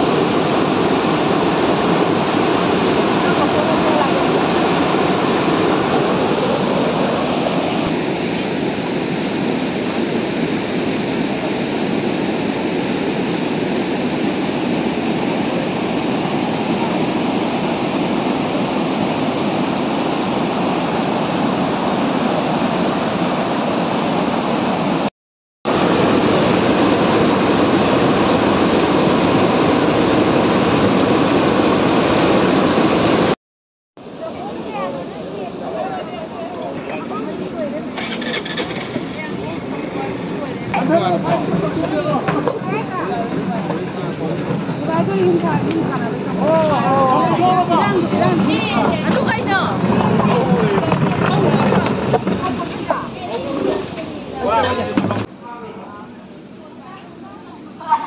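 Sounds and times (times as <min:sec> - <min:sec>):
rushing floodwater: 0:00.0 - 0:25.1, 0:25.7 - 0:33.4, 0:34.0 - 0:55.4.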